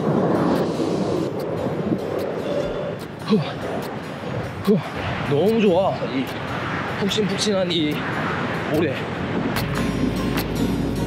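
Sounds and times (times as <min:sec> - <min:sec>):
waves breaking on beach: 0:00.0 - 0:11.0.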